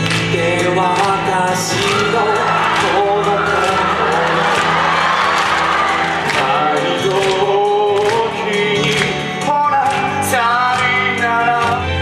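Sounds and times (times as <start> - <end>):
band accompaniment: 0.0 - 12.0
person singing long notes: 0.2 - 12.0.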